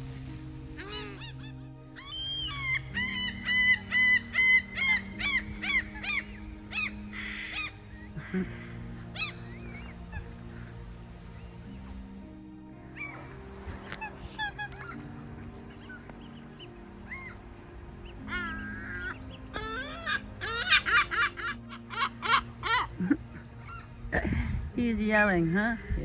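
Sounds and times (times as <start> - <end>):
gulls calling: 0.0 - 26.0
soft background music: 0.0 - 26.0.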